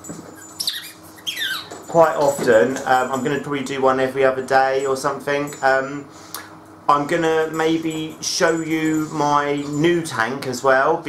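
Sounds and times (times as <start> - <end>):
small dog whining: 0.3 - 1.8.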